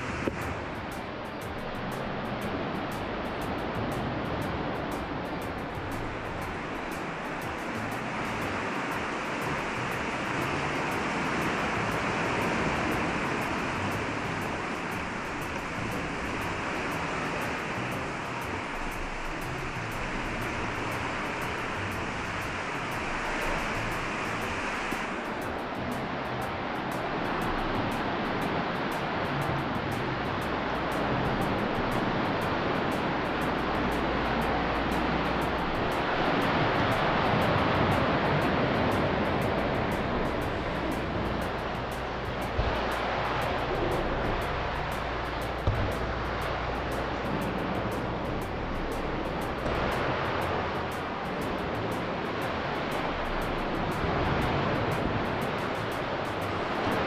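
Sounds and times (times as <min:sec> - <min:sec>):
waves breaking in sea cave: 0:00.0 - 0:57.0.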